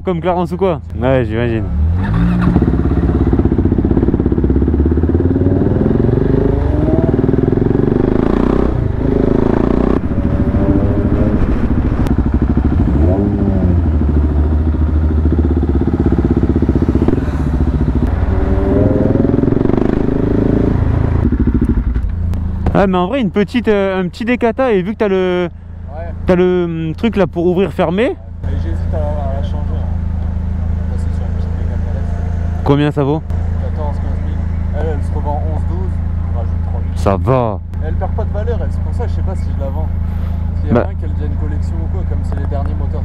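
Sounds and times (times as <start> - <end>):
motorcycle engine revving: 1.5 - 23.0, 27.5 - 43.0.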